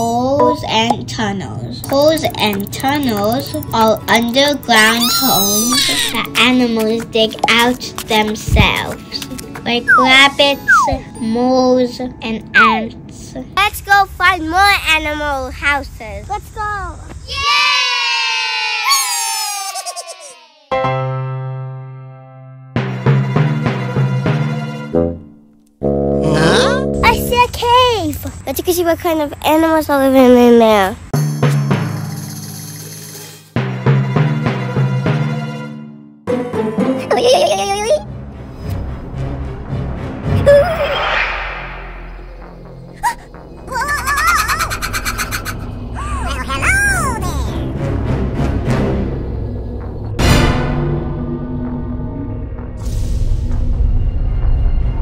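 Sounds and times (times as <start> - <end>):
background music: 0.0 - 14.6, 31.2 - 55.0
bats squeaking: 1.8 - 6.4, 9.8 - 11.0
shrieks rising and falling: 4.8 - 6.1, 9.9 - 11.0, 40.7 - 47.2
children cheering: 17.3 - 20.7.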